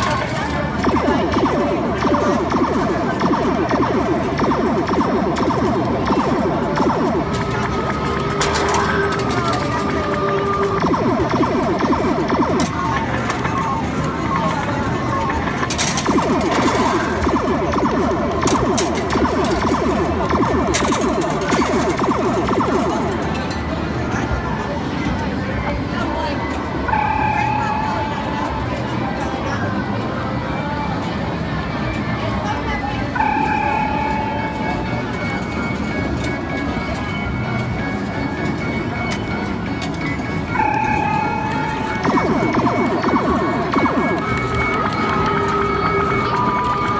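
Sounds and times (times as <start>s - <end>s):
falling electronic tones: 0.0s - 23.4s, 40.5s - 46.9s
machine noise: 0.0s - 23.8s, 33.2s - 46.9s
busy arcade din: 0.0s - 46.9s.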